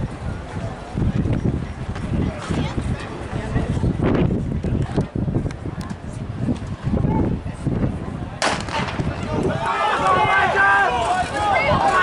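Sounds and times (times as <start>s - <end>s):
starter's pistol shot: 8.4s - 9.0s
spectators shouting: 9.0s - 12.0s.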